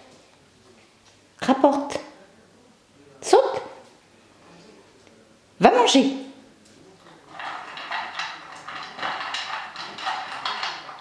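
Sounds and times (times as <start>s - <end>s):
dog crunching dry kibble: 7.1s - 11.0s.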